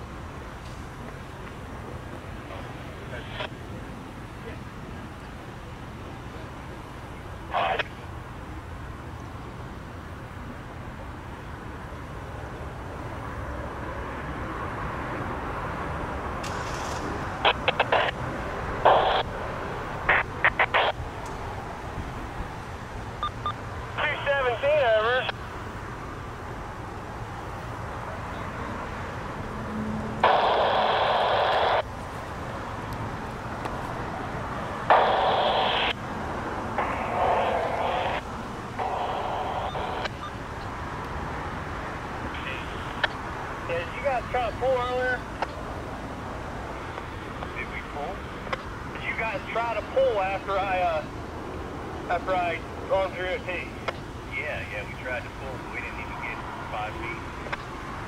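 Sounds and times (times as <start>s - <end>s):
scanner radio transmissions: 0.9s - 8.3s, 16.5s - 26.2s, 30.2s - 32.4s, 33.2s - 40.8s, 41.8s - 51.2s, 52.0s - 58.0s
radio squelch clicks: 16.4s - 18.2s, 18.8s - 19.3s, 20.1s - 21.4s, 30.2s - 31.8s, 34.9s - 36.0s, 36.8s - 38.2s, 38.8s - 41.2s, 42.2s - 43.2s, 46.8s - 47.8s, 48.4s - 48.7s, 53.8s - 54.1s, 57.4s - 57.8s.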